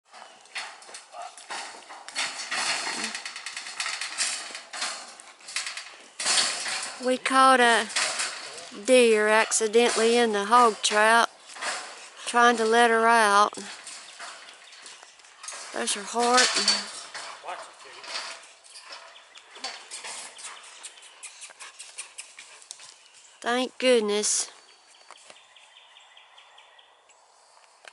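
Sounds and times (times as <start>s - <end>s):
hooves scrabbling and knocking: 0.0s - 25.4s
metal trap rattling and clanking: 1.5s - 20.2s.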